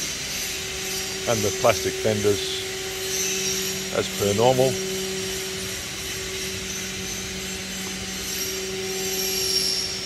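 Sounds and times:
machinery hum: 0.0s - 10.0s
steady hiss: 0.0s - 10.0s.

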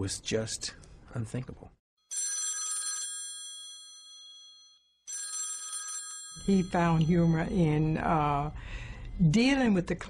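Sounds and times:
rotary telephone bell ringing: 2.0s - 7.6s.

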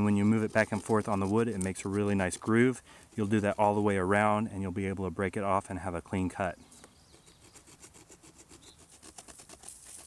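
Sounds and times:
stone sawing across wooden stick: 0.0s - 3.6s, 7.1s - 10.0s.

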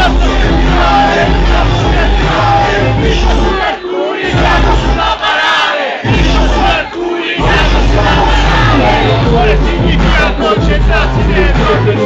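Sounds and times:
crowd shouting and singing: 0.0s - 12.0s
loud hip-hop beat: 0.0s - 12.0s.

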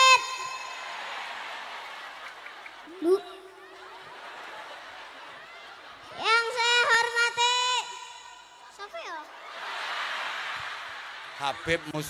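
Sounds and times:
boy reciting over loudspeaker: 0.0s - 0.8s, 3.0s - 3.4s, 6.2s - 9.3s
crowd background hiss: 0.0s - 6.3s, 7.8s - 12.0s.

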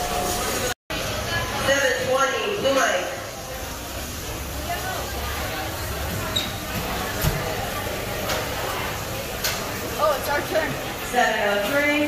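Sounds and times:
faint voices of people: 2.7s - 12.0s.

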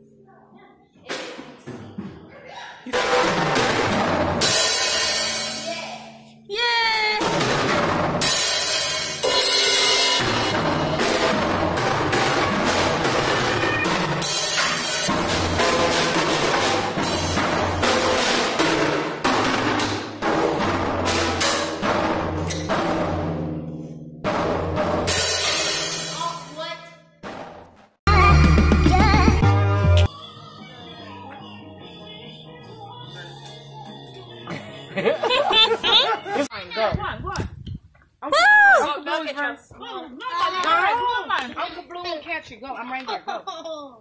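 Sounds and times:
drum kit playing: 2.9s - 30.1s.

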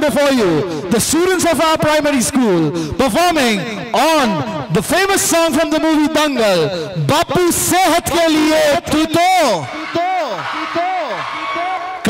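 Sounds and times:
man speaking over pa system: 0.0s - 12.0s.

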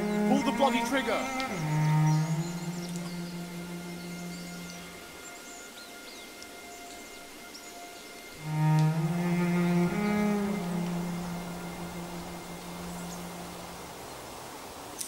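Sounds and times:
low bowed strings film music: 0.0s - 14.7s.

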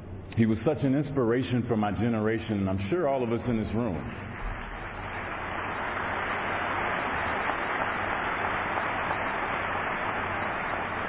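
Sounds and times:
large audience applauding: 4.2s - 11.0s.

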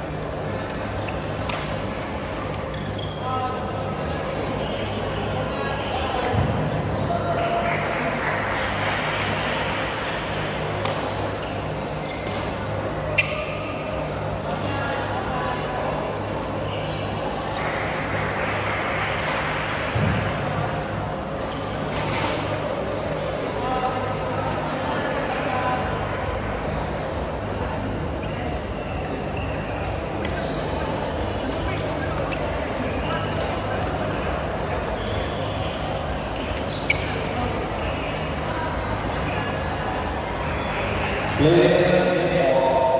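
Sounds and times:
chatter of many people: 0.0s - 42.9s.

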